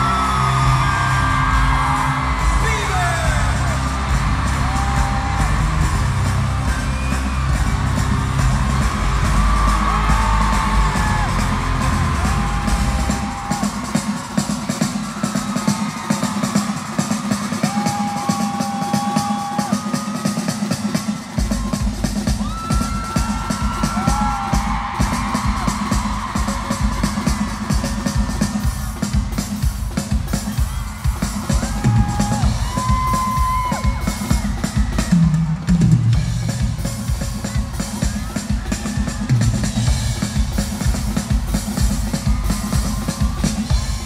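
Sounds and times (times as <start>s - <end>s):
crowd whooping: 0.0s - 44.0s
drum kit: 0.0s - 44.0s
loud live pop music: 0.0s - 44.0s.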